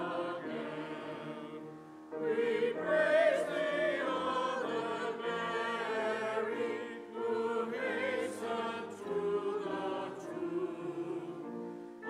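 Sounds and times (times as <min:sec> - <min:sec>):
church choir singing: 0:00.0 - 0:12.0.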